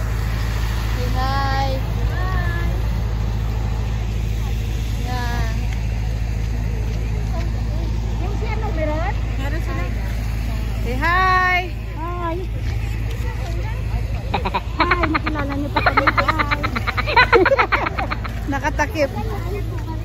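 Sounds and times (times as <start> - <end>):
low rumble outdoors: 0.0 - 20.0
people calling out: 13.8 - 18.8.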